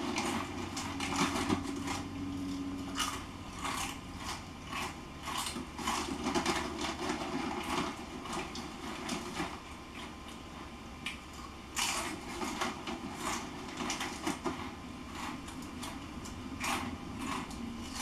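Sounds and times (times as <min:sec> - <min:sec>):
crinkly chip bag crackling: 0:00.0 - 0:10.5, 0:11.4 - 0:18.0
chips crunching: 0:00.0 - 0:18.0.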